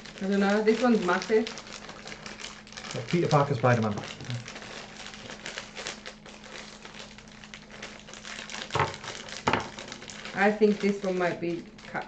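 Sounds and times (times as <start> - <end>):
foil packet crinkling: 0.0 - 12.0.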